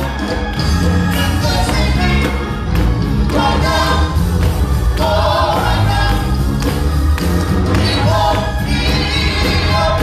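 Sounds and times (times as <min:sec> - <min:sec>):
gospel group singing: 0:00.0 - 0:10.0
instrumental accompaniment with bass: 0:00.0 - 0:10.0.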